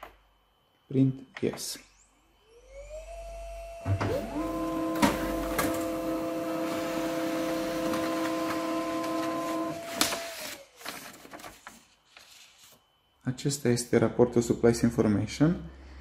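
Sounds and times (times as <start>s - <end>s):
laser printer motors whining: 1.9s - 10.9s
printer clicks: 4.9s - 6.0s.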